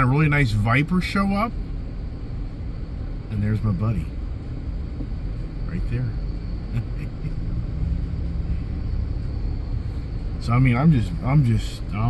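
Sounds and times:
car engine rumble: 0.0s - 12.0s
road noise: 0.0s - 12.0s.

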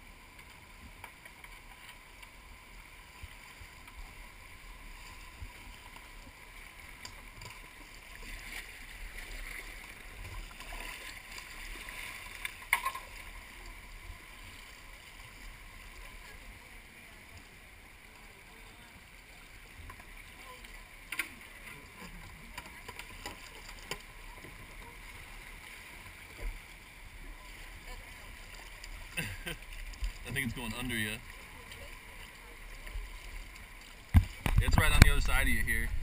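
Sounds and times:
paddle splashes: 0.0s - 36.0s.

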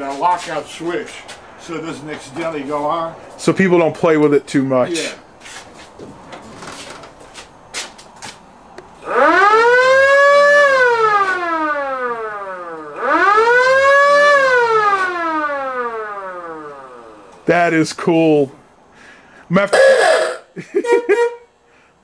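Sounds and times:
car siren wailing: 9.0s - 17.5s, 19.7s - 21.4s.

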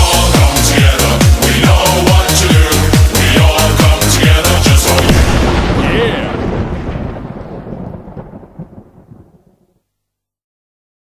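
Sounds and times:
low rumbling noise: 3.1s - 9.2s.

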